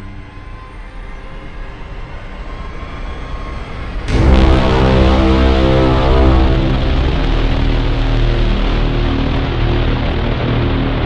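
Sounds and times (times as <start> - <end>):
low rumbling trailer effect: 3.8 - 11.0.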